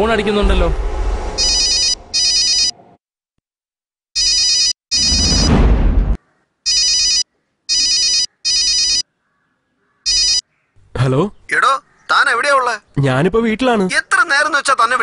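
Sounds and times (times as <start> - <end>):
rushing noise: 0.0 - 3.0, 5.0 - 6.2
mobile phone ringtone: 1.6 - 2.7, 4.2 - 5.5, 6.7 - 9.0, 10.1 - 10.4.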